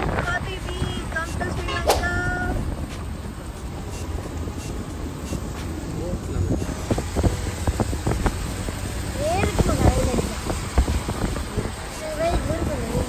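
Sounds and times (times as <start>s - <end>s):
vehicle road and engine rumble: 0.0s - 13.0s.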